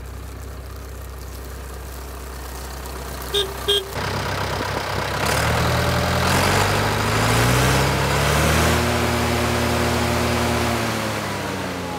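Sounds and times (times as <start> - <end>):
tractor diesel engine revving: 0.0 - 11.9.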